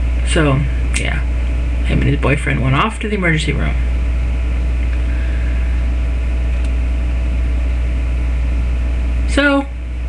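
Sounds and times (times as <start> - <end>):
low hum: 0.0 - 10.0.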